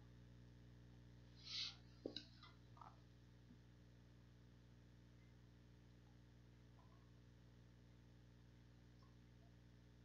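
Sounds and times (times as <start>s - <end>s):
low electrical hum: 0.0s - 10.0s
soft hiss: 1.3s - 2.8s.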